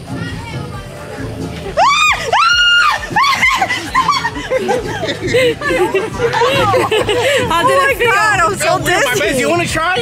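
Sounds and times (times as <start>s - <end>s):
woman screaming: 1.8s - 3.7s.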